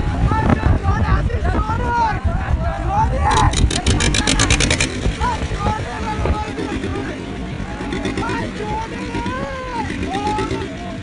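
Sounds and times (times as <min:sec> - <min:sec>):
wind on microphone: 0:00.0 - 0:10.3
boat motor rumbling: 0:00.0 - 0:11.0
fast run of sharp clicks: 0:03.3 - 0:05.3.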